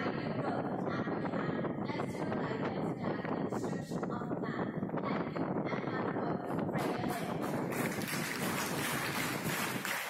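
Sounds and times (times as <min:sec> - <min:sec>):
audience clapping: 0:06.8 - 0:10.0.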